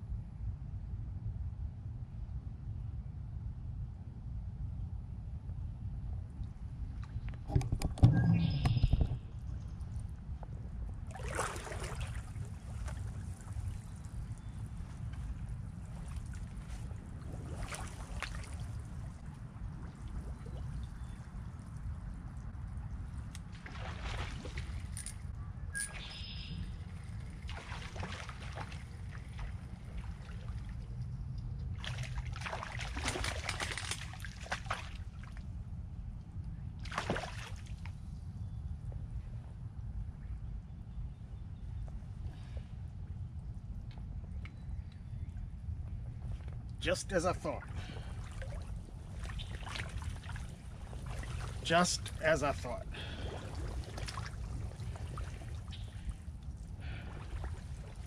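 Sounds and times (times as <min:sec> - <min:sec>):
steady low rumble: 0:00.0 - 0:36.9, 0:37.6 - 0:58.0
water sloshing and lapping: 0:06.3 - 0:35.6, 0:36.8 - 0:38.1, 0:47.4 - 0:58.0.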